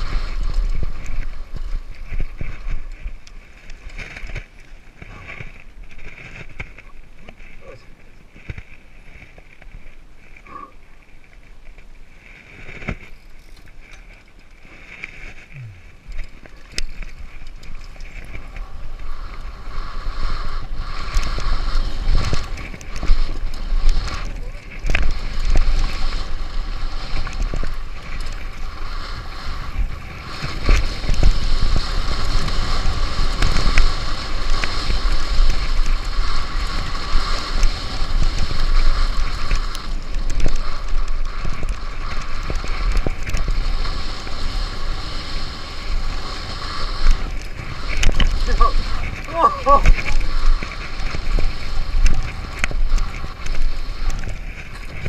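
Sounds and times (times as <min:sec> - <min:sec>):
wind rushing over microphone: 0:00.0 - 0:10.8, 0:11.7 - 0:55.0
bike tyres on loose dirt: 0:00.0 - 0:55.0.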